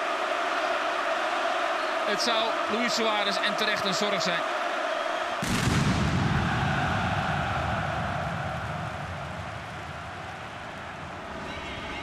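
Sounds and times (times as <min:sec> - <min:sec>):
stadium crowd cheering and clapping: 0:00.0 - 0:12.0.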